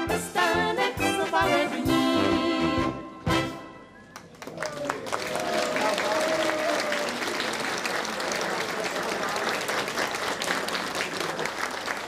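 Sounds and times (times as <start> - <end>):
brass band playing dance tune: 0.0 - 4.0.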